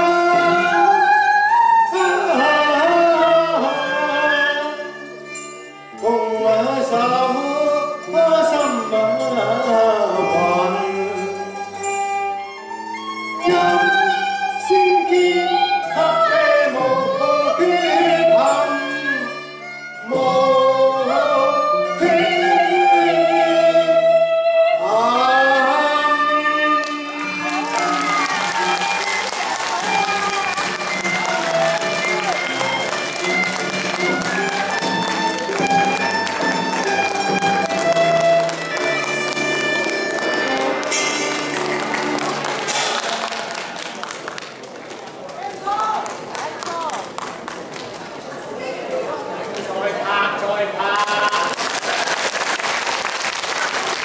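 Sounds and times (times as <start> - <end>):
woman singing opera: 0.0 - 4.8, 13.4 - 19.4, 20.1 - 29.0
instrumental accompaniment: 0.0 - 45.2.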